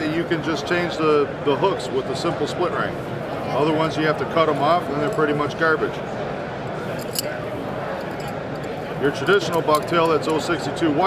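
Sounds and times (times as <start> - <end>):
crowd chatter in hall: 0.0 - 11.0.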